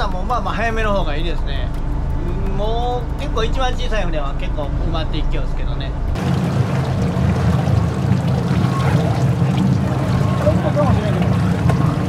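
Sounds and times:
boat engine running: 0.0s - 12.0s
water splashing against hull: 6.2s - 12.0s.

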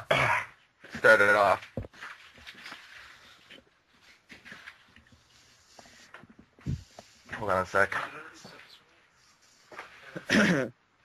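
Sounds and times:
faint soft clicks and rustles: 0.8s - 10.2s.

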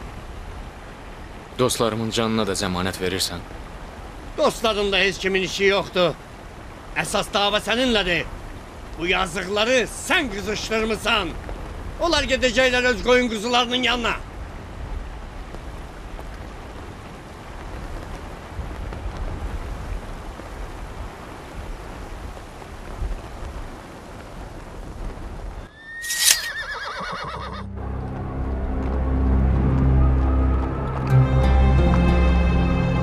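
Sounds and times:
horse neighing: 25.7s - 27.7s
music with low sustained tones: 27.7s - 33.0s.

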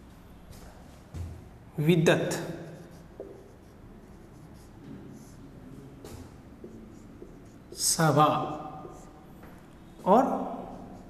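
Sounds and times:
marker scratching on whiteboard: 2.3s - 11.0s.

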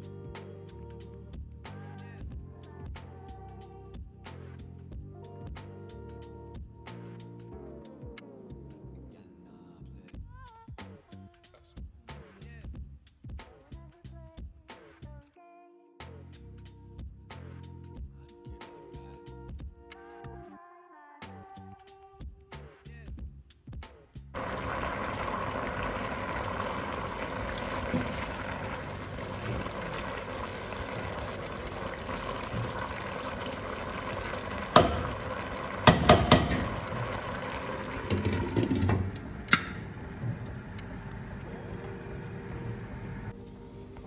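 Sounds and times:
pot boiling hard: 24.4s - 43.4s
spatula knocking against pot: 35.8s - 36.7s.

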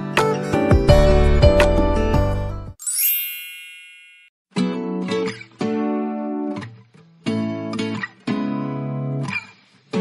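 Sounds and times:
acoustic guitar background music: 0.0s - 2.8s, 4.5s - 10.0s
sparkling chime with upward sweep: 2.8s - 4.4s.

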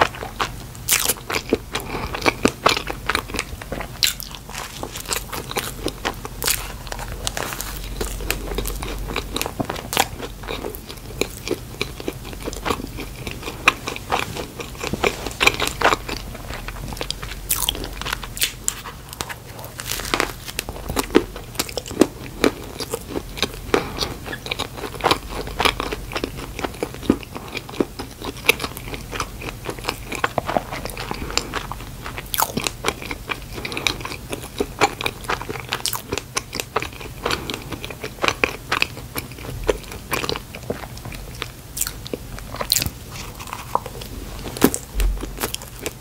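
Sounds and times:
close chewing mouth clicks: 20.6s - 46.0s.

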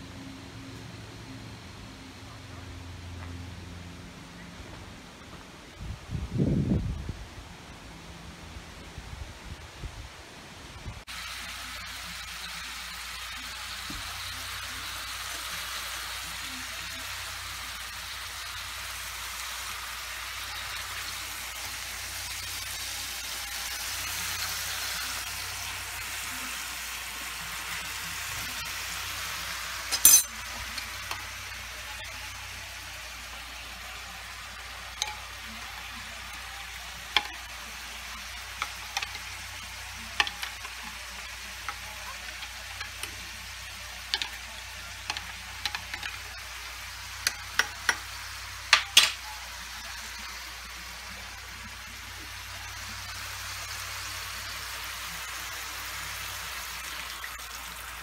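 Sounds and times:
meat sizzling in a frying pan: 11.0s - 58.0s
spoon clinking against glass: 29.9s - 30.4s.

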